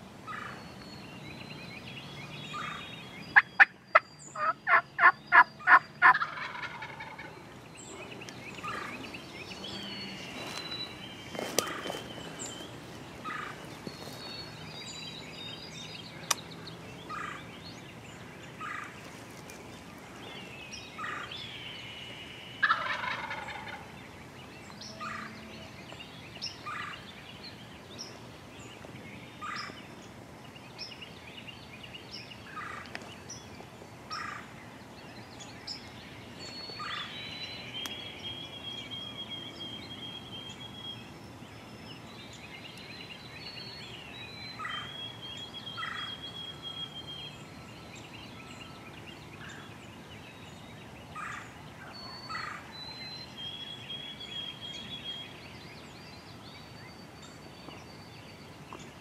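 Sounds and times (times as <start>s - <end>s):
songbird trills: 0.0s - 59.0s
turkey gobbling: 3.4s - 7.4s, 22.6s - 23.9s.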